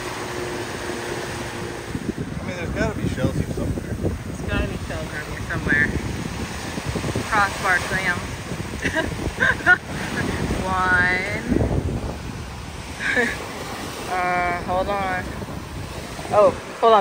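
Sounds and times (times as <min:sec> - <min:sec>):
surf breaking on beach: 0:00.0 - 0:17.0
wind buffeting microphone: 0:00.0 - 0:17.0.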